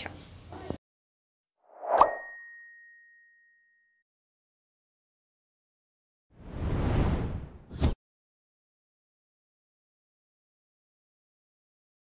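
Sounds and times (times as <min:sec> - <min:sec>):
bright bell ding: 0:01.9 - 0:03.9.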